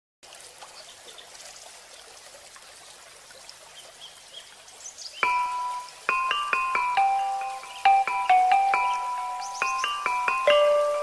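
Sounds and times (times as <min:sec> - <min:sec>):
faint trickling water: 0:00.2 - 0:11.0
glockenspiel-like note ringing: 0:05.2 - 0:11.0
bird chirps: 0:06.9 - 0:11.0.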